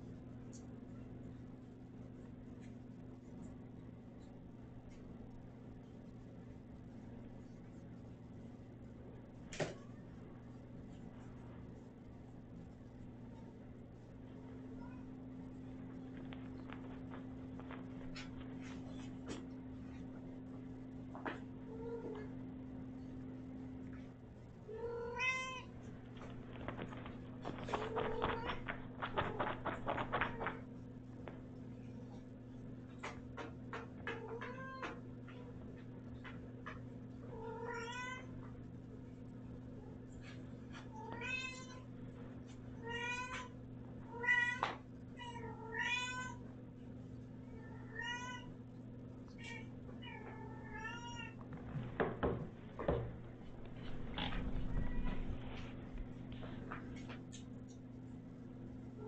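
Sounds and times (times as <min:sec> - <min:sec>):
steady low hum: 0:00.0 - 0:59.0
scuffs and knocks: 0:26.1 - 0:30.6, 0:51.4 - 0:57.5
kitten clawing fabric toy: 0:26.3 - 0:30.6.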